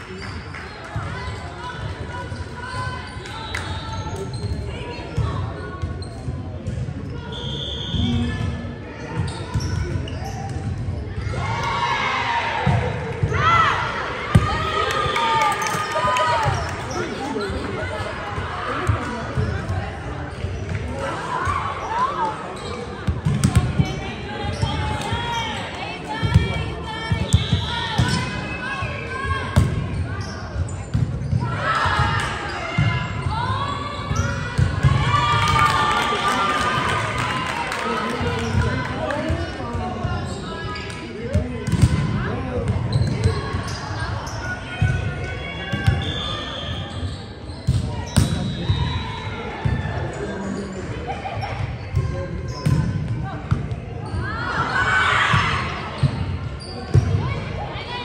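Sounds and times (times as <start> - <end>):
crowd cheering and clapping: 14.5 - 17.4, 35.0 - 39.2.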